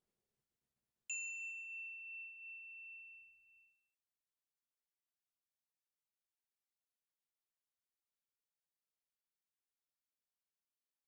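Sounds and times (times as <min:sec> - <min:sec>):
bell-like ding: 0:01.1 - 0:03.9.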